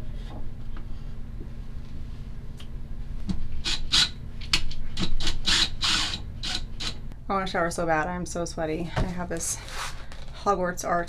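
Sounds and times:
cordless drill rasping: 5.2s - 7.0s.

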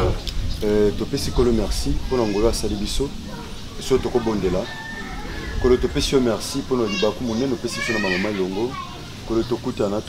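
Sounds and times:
man talking: 0.0s - 4.9s, 5.6s - 10.0s.

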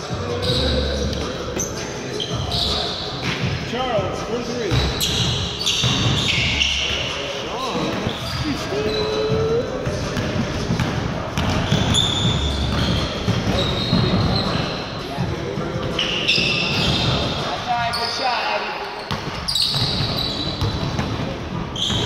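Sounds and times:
sneakers squeaking: 0.0s - 3.7s, 4.6s - 22.0s
players calling out: 3.9s - 10.4s
basketball bouncing: 8.0s - 14.6s, 19.1s - 22.0s.

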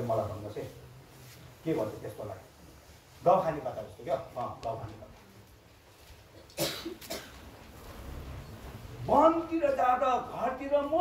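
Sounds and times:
person coughing: 6.6s - 7.4s.

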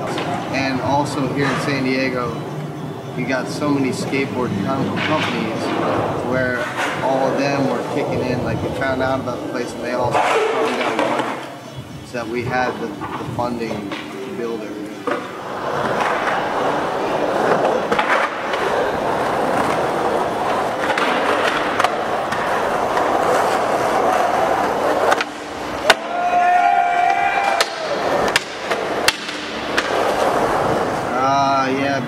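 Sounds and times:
skateboard clacks: 0.0s - 11.7s, 12.5s - 31.2s
skateboard wheels rolling on concrete: 0.0s - 32.0s.

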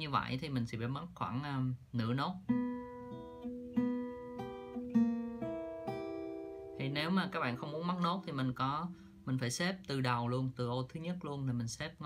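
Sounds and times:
acoustic guitar fingerpicked: 2.4s - 10.5s.

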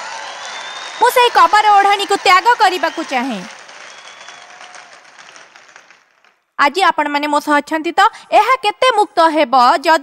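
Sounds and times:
arena audience applause: 0.0s - 6.4s.

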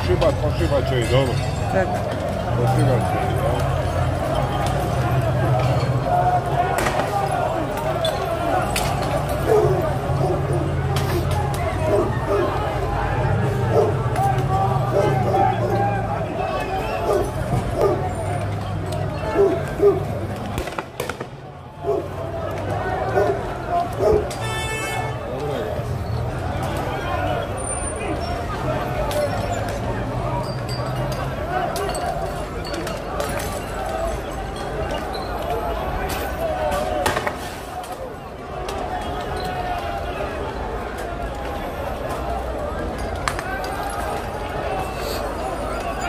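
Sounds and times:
people's voices: 0.0s - 46.0s
street noise: 0.0s - 46.0s
men shouting: 0.8s - 18.4s
firecrackers cracking: 20.3s - 21.5s.

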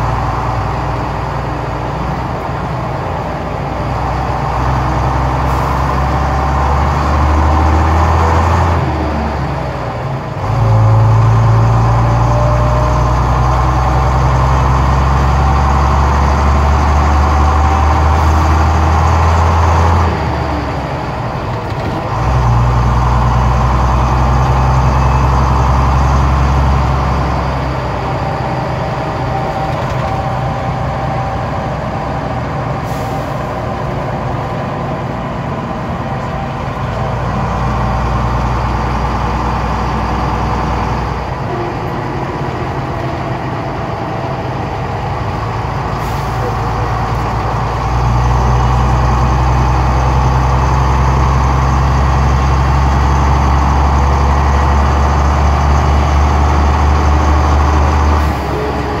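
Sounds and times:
bus diesel engine pulling: 0.0s - 59.0s.

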